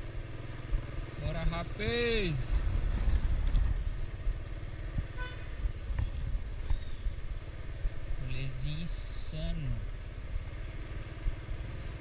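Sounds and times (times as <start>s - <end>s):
motorcycle engine running: 0.0s - 12.0s
wind on microphone: 2.5s - 7.3s
motorcycle horn toot: 5.1s - 5.6s.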